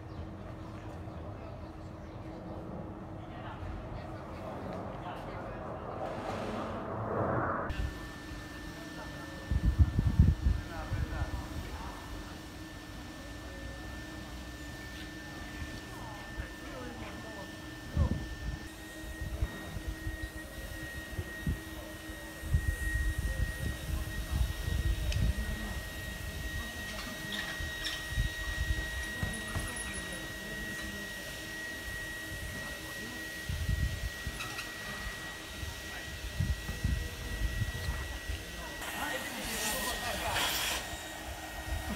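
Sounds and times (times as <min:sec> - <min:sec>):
electric blower drone: 0:05.6 - 0:41.9
brief rush of noise: 0:05.8 - 0:07.9.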